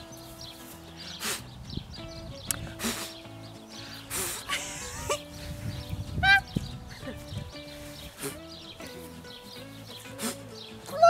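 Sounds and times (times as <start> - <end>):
person laughing: 4.2 - 5.3, 6.2 - 7.3.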